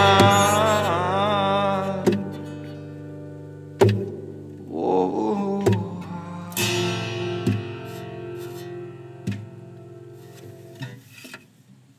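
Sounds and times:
acoustic guitar strums: 0:00.0 - 0:11.9.

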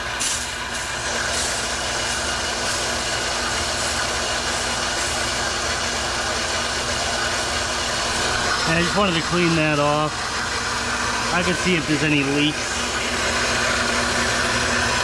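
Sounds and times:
electric pump running: 0:00.0 - 0:15.0
water hissing from spray wand: 0:00.1 - 0:13.7.

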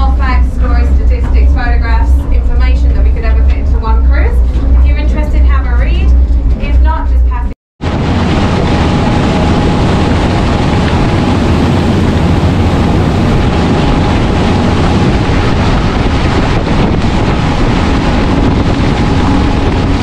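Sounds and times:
boat engine: 0:00.0 - 0:20.0
wind buffeting microphone: 0:00.0 - 0:20.0
wake water rushing: 0:07.8 - 0:20.0.

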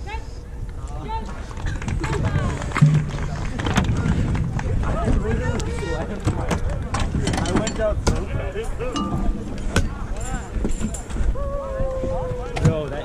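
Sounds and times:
people talking in background: 0:00.0 - 0:13.0.

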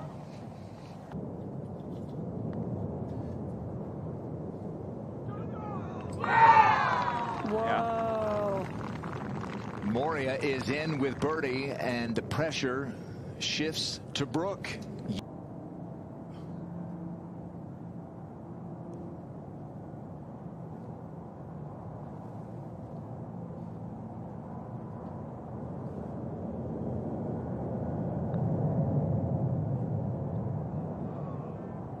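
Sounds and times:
low outdoor background noise: 0:00.0 - 0:32.0.

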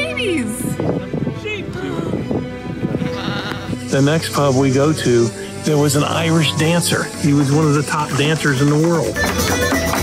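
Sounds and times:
background music with percussive taps: 0:07.0 - 0:10.0.

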